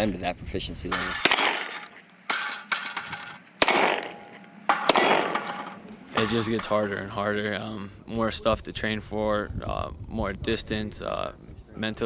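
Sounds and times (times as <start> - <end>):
gunshots: 0.9 - 6.6
steel plate ringing: 0.9 - 6.8.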